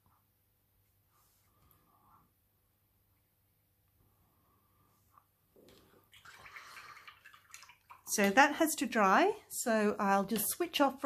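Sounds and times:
paintbrush rinsed in water: 5.7 - 8.9.

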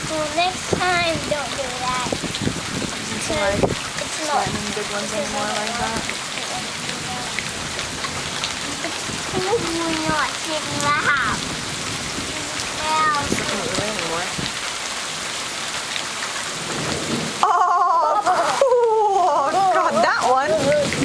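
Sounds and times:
steady rain falling: 0.0 - 21.0
child's voice wavering: 9.4 - 11.4, 12.3 - 13.5.

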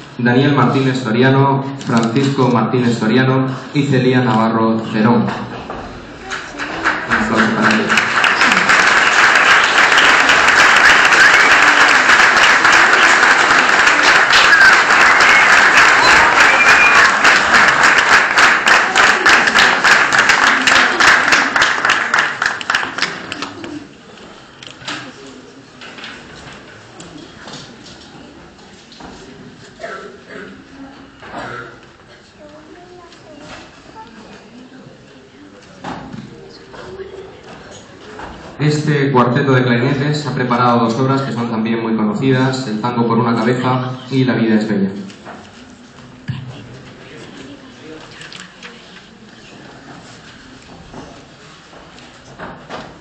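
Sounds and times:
low room murmur: 0.0 - 41.9, 43.1 - 53.0
footsteps on stage: 49.0 - 53.0.

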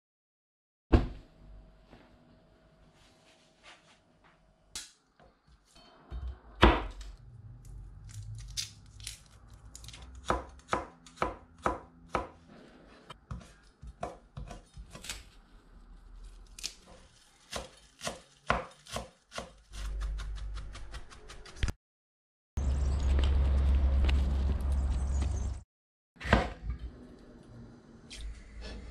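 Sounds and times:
knife chopping on cutting board: 13.3 - 15.1, 17.5 - 20.3.

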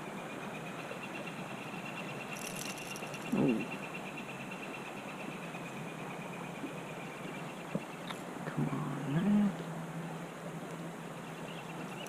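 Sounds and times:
low outdoor hiss: 0.0 - 12.0.

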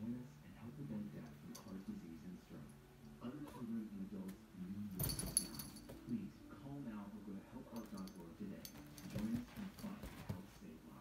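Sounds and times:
jingling rattle: 5.0 - 6.1, 7.7 - 10.3.

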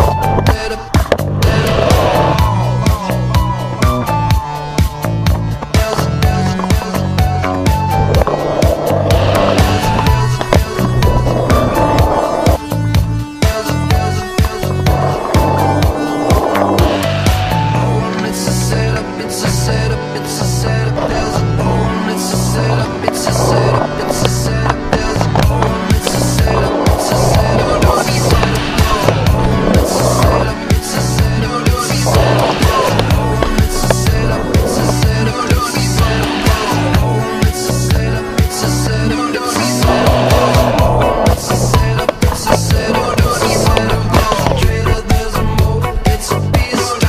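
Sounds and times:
music with steady beat: 0.0 - 47.0
skateboard wheels rolling on concrete: 0.0 - 47.0.

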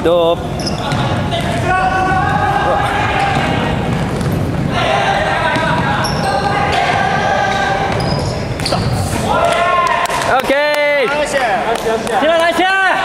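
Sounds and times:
players calling: 0.0 - 13.0
high-pitched squeals: 0.4 - 9.4
sneakers on wooden floor: 0.6 - 9.3
ball bouncing on wooden floor: 3.2 - 4.7, 7.9 - 9.0.

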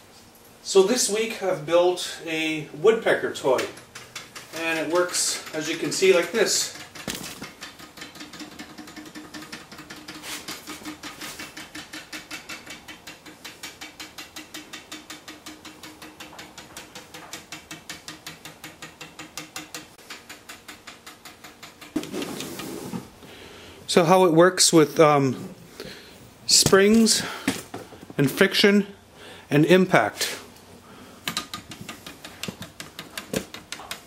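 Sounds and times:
wooden toy tapping on pole: 3.5 - 22.0, 31.3 - 34.0.

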